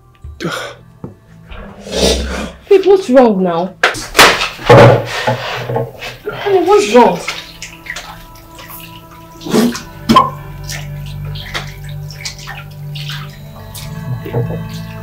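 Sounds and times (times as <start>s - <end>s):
background music: 0.0s - 15.0s
man rinsing mouth: 1.7s - 2.7s, 4.1s - 15.0s
water splashing in a sink: 3.8s - 15.0s.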